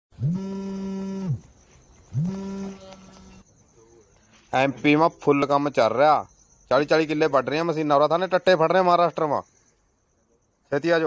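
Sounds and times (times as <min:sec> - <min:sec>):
mobile phone vibrating: 0:00.2 - 0:01.5, 0:02.1 - 0:03.4.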